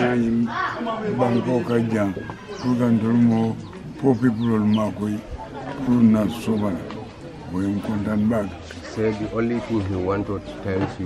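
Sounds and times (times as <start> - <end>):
faint birds calling: 0.0 - 10.7
man speaking: 0.0 - 11.0.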